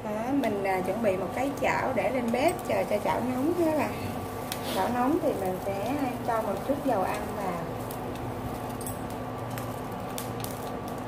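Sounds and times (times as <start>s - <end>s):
stove humming: 0.0s - 11.0s.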